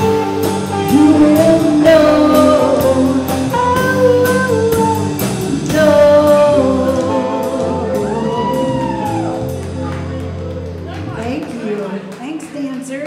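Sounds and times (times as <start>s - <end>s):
person singing: 0.0s - 9.4s
bass guitar: 0.0s - 11.5s
drum kit beat: 0.0s - 12.0s
electric guitars: 0.0s - 12.0s.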